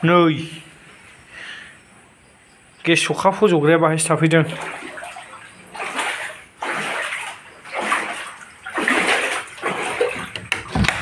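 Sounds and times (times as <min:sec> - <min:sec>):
water splashing and sloshing: 0:03.9 - 0:11.0.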